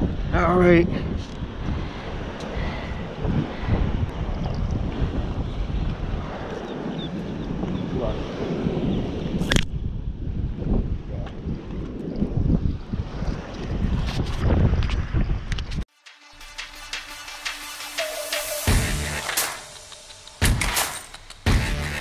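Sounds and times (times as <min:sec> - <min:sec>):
wind buffeting microphone: 0:00.0 - 0:15.9.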